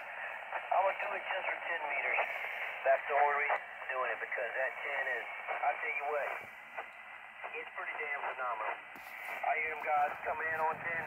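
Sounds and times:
man speaking over radio: 0:00.2 - 0:11.0.

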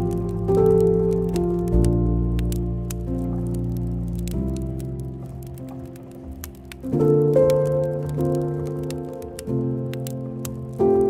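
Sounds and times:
burning logs crackling: 0:00.0 - 0:11.0
soft ambient music: 0:00.0 - 0:11.0.

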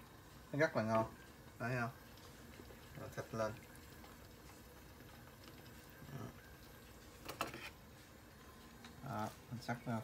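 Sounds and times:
broth simmering in a pot: 0:00.0 - 0:10.0.

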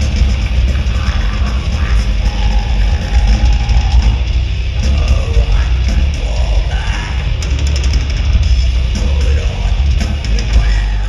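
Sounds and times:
live metal band playing loudly: 0:00.0 - 0:11.0.

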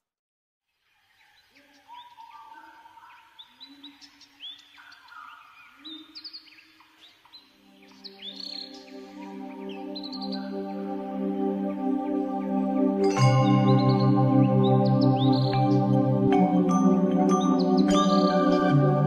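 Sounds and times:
birds chirping: 0:00.7 - 0:19.0
soft ambient music: 0:05.4 - 0:19.0.

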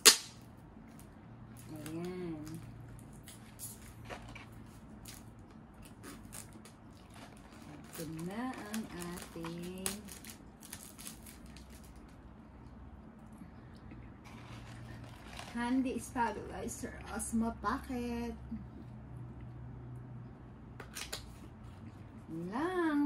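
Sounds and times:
sharp snap: 0:00.0 - 0:00.4
woman's voice: 0:01.6 - 0:02.7, 0:07.9 - 0:10.2, 0:15.5 - 0:18.6, 0:22.3 - 0:23.0
box being unwrapped: 0:06.1 - 0:12.1.

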